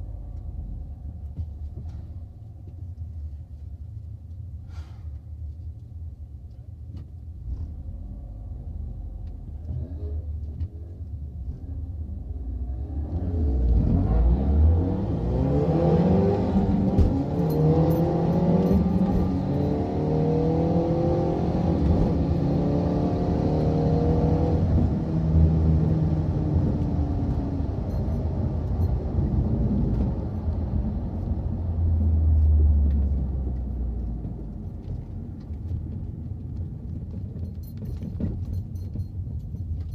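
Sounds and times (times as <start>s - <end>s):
car engine revving through upshifts: 12.7s - 27.8s.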